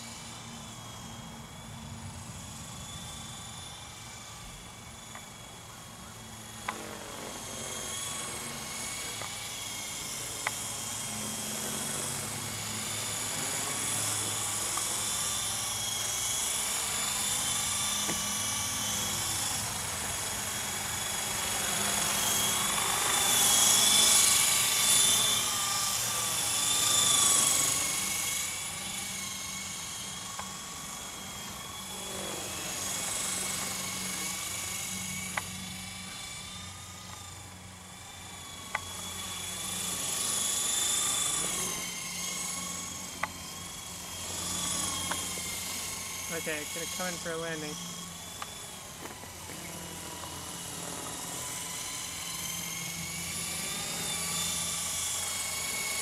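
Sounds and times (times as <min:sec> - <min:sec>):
rc helicopter rotor whine: 0:00.0 - 0:56.0.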